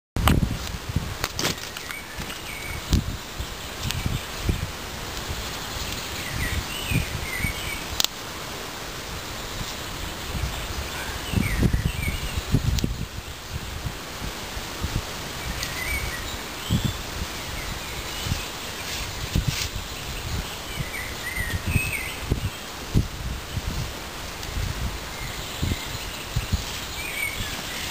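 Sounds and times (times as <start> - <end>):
leaves rustling: 0.2 - 27.9
branches brushing: 0.3 - 11.2, 13.8 - 27.9
bird chirps: 25.2 - 27.9.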